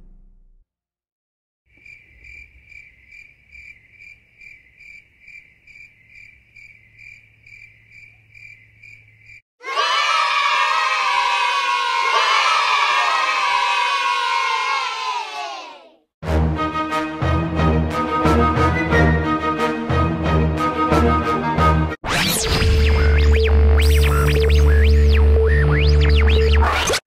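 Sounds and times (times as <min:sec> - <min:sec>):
cricket chirping: 0:01.7 - 0:09.4
children shouting and cheering: 0:09.6 - 0:16.0.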